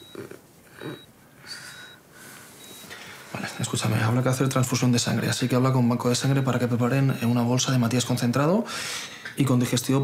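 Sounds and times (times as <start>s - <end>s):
patient monitor beeping: 0.0s - 7.8s
soft breath: 0.8s - 3.4s.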